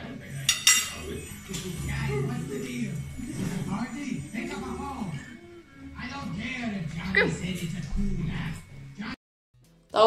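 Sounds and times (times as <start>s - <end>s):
cutlery clinking on a plate: 0.5s - 1.7s.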